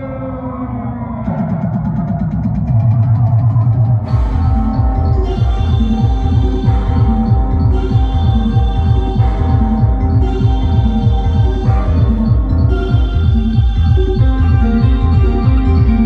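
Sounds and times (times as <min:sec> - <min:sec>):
sustained synth tones: 0:00.0 - 0:16.0
heavy pulsing bass beat: 0:01.2 - 0:16.0
live band keyboard and drum pads: 0:01.2 - 0:16.0
fast ticking rhythm: 0:01.3 - 0:16.0.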